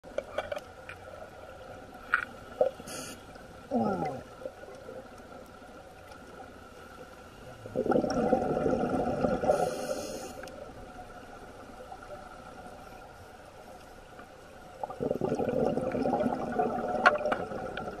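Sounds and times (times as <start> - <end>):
underwater breath bubbles: 7.6 - 10.6, 14.8 - 18.0.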